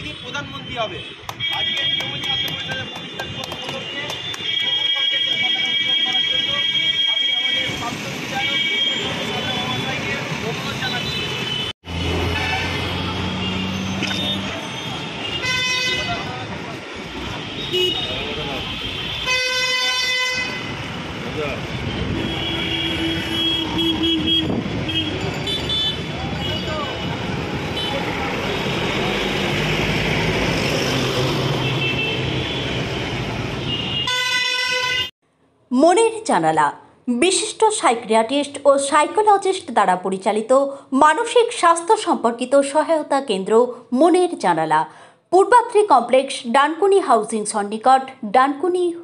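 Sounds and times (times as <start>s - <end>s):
vehicle horns honking: 0.0s - 16.4s, 17.2s - 20.9s, 21.7s - 29.6s, 31.5s - 35.1s.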